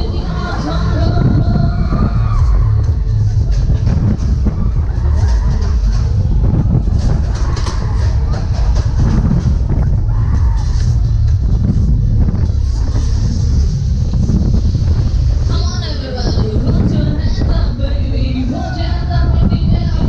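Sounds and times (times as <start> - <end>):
fairground music: 0.0 - 20.0
wind buffeting microphone: 0.0 - 20.0.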